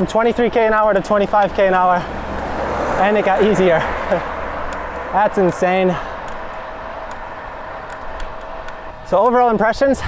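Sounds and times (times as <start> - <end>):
bicycle tyre noise: 0.7 - 9.2
wind rushing over microphone: 0.8 - 10.0.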